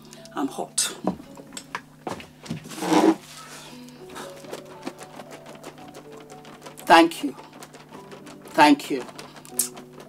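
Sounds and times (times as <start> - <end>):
soft background music: 0.0 - 10.0
hand fan clicking and flapping: 3.7 - 10.0.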